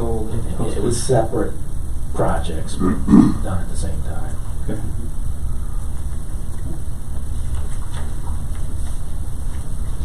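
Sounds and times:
low room noise rumble: 0:00.0 - 0:10.0.

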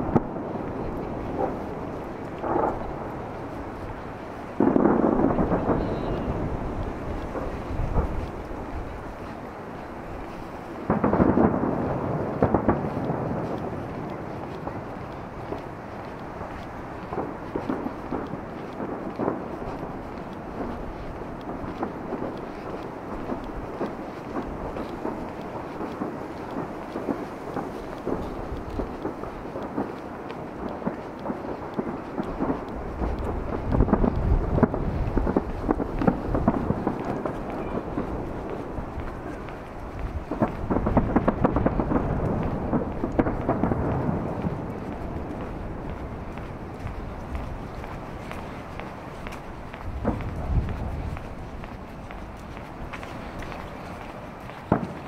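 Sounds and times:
distant fireworks booming: 0:00.0 - 0:55.0.

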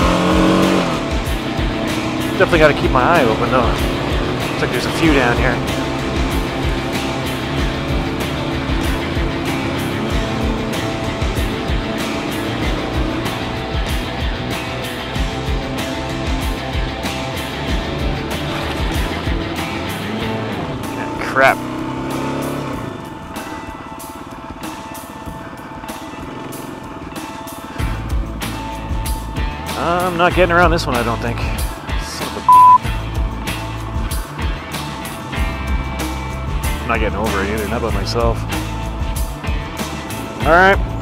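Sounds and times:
motorcycle engine revving: 0:00.0 - 0:41.0.

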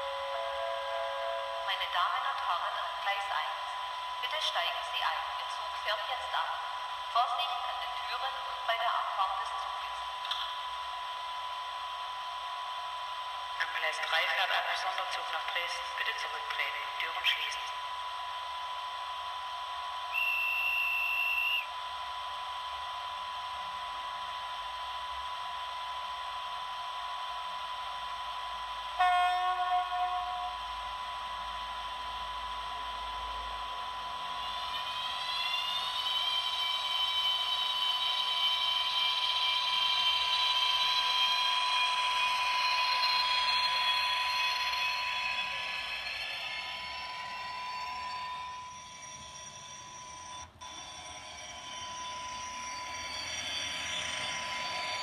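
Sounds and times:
train horn blast: 0:00.0 - 0:01.7, 0:29.0 - 0:30.9
steady high tone: 0:00.0 - 0:12.6, 0:26.8 - 0:55.0
electric motor whine rising: 0:30.0 - 0:55.0.

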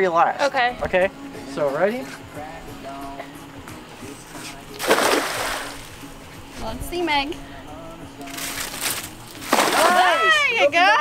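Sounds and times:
cast net splashing on water: 0:04.8 - 0:06.0, 0:08.3 - 0:10.4.

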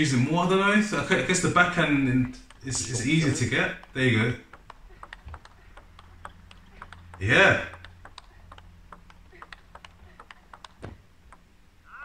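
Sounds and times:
table tennis ball clicks: 0:02.2 - 0:11.6.

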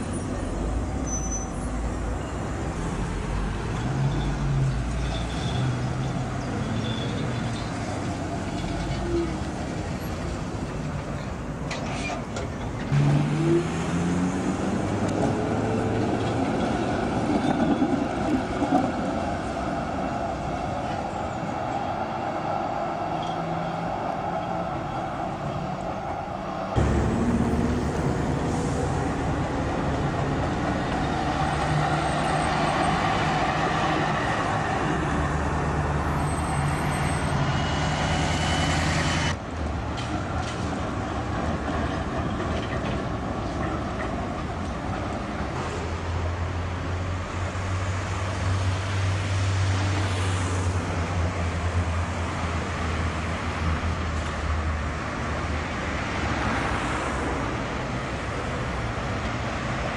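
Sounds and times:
road traffic: 0:00.0 - 0:59.9.

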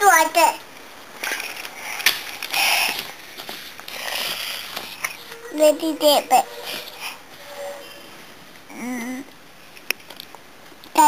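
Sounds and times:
book page rustling: 0:01.3 - 0:05.2.

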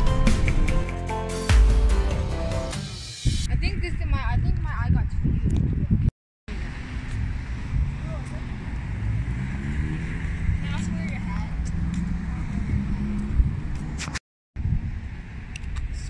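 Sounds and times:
steady low traffic rumble: 0:00.0 - 0:00.8
car engine accelerating past: 0:06.6 - 0:14.0.

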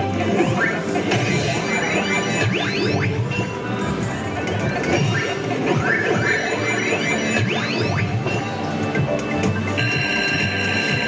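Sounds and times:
electronic slot machine music: 0:00.0 - 0:11.0
arcade sound effects pitch sweeps: 0:00.4 - 0:03.6, 0:04.8 - 0:08.5.

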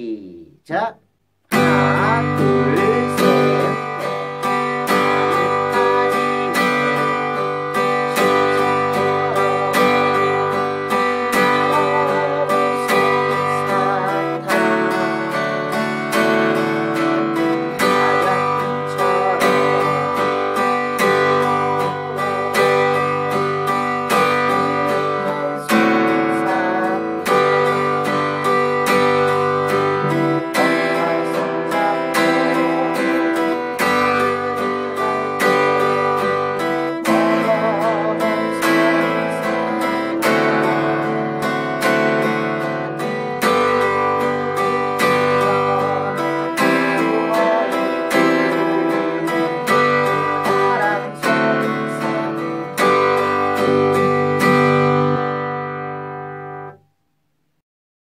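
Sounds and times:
acoustic guitar strumming chords: 0:00.0 - 0:57.6.

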